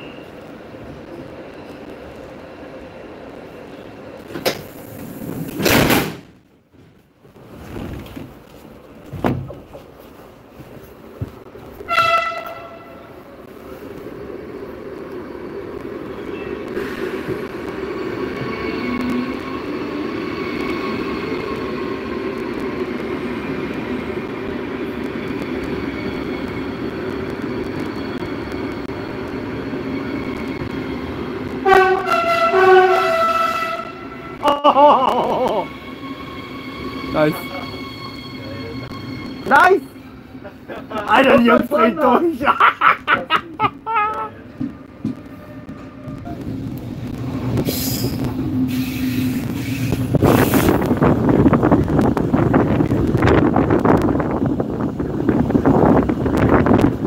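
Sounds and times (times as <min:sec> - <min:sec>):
train rolling rumble: 0:00.0 - 0:57.0
train horn: 0:11.8 - 0:13.2, 0:31.6 - 0:34.5.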